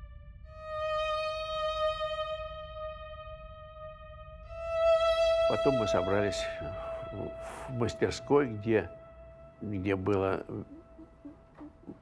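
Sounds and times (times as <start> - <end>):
solo violin long notes: 0.0 - 8.2.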